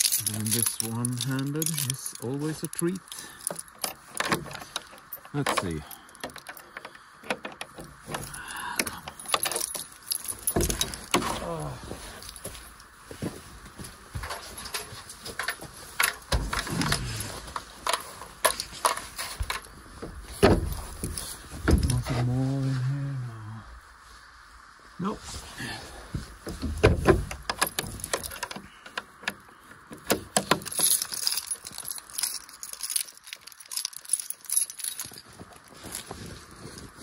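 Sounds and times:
keys jangling against padlock: 0.0s - 12.9s, 14.2s - 22.1s, 26.7s - 36.2s
footsteps in deep snow: 10.3s - 16.0s, 35.0s - 37.0s
wooden door creaking open: 14.3s - 22.3s, 26.5s - 31.2s.

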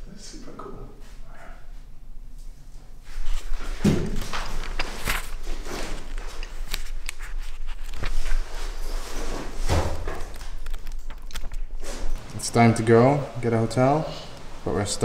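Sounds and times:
paper pages rustling: 3.2s - 13.0s.

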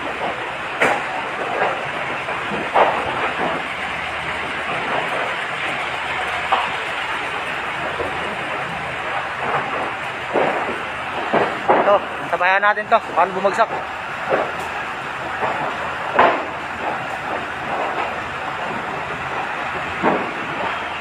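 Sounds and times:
fire truck engine rumbling: 0.0s - 21.0s.

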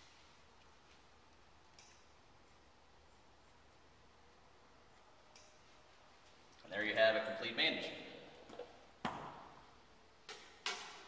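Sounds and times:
sharp click: 1.7s - 2.1s, 5.3s - 5.6s.

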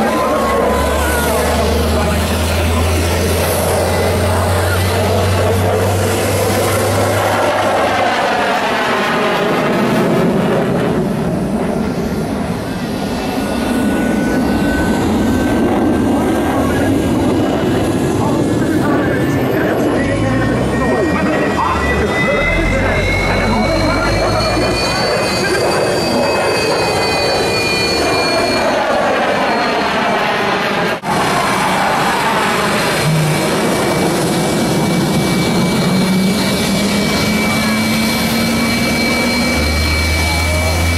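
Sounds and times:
jet engines running: 0.0s - 40.9s.

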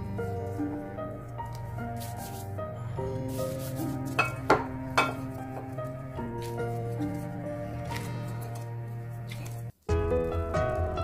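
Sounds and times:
background music: 0.0s - 11.0s
hands kneading sticky dough: 1.2s - 2.6s, 3.3s - 9.9s.

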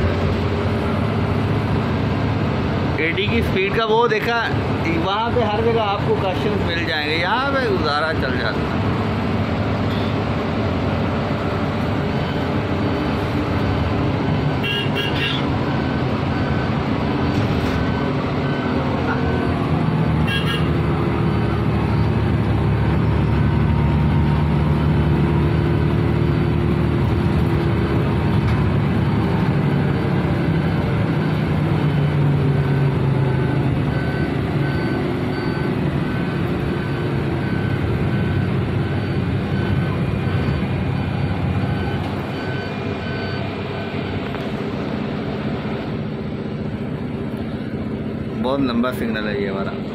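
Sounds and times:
bus engine: 0.0s - 49.9s
road noise: 0.0s - 49.9s.

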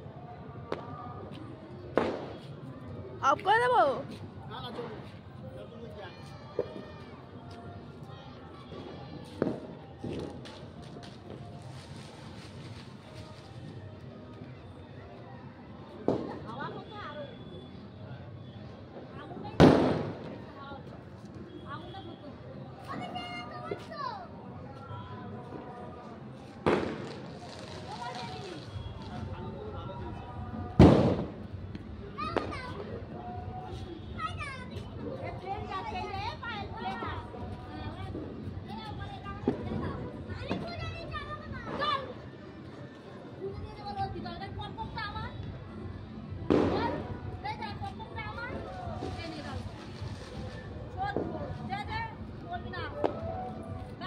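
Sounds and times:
faint distant voices: 0.0s - 54.0s
loud firecracker bang: 2.0s - 2.4s, 19.6s - 20.3s, 26.6s - 28.4s, 30.8s - 31.4s, 46.5s - 47.0s.

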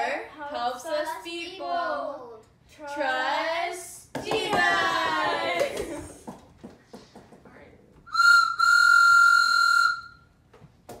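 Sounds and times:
whistle blown: 8.1s - 10.4s.

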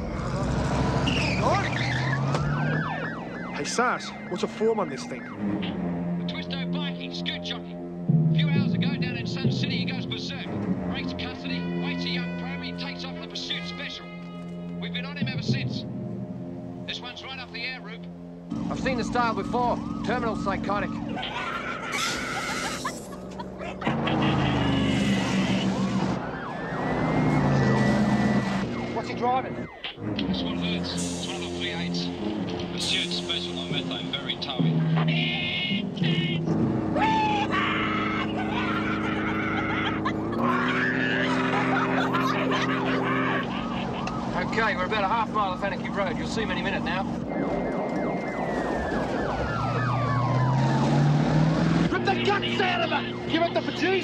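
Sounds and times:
car engine running hard: 0.0s - 6.6s, 23.2s - 54.0s
siren wailing: 0.0s - 7.7s, 10.3s - 15.3s, 18.5s - 54.0s
man screaming: 37.0s - 41.9s.

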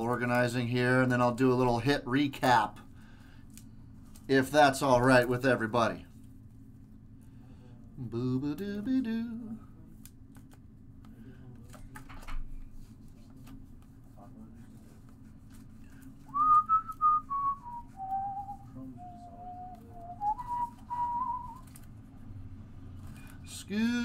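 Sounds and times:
trading cards being handled: 10.0s - 10.7s, 19.7s - 22.0s
man whistling a tune: 16.3s - 21.6s.

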